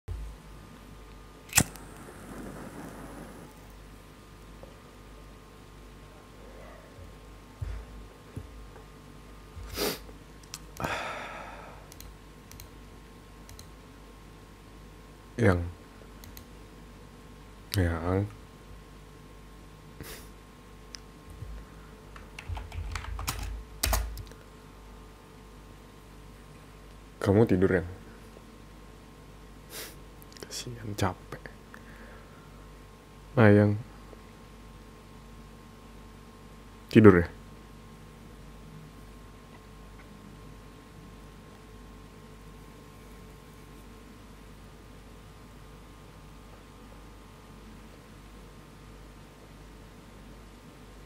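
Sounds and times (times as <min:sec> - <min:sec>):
sharp clicks: 0:01.5 - 0:02.1, 0:11.9 - 0:12.7, 0:13.5 - 0:13.7
sharp crack: 0:01.5 - 0:03.2
soft rumble: 0:01.7 - 0:03.8.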